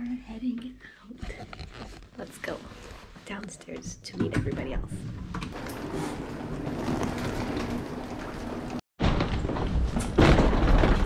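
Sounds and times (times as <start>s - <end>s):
suitcase rolling on carpet: 5.5s - 8.8s.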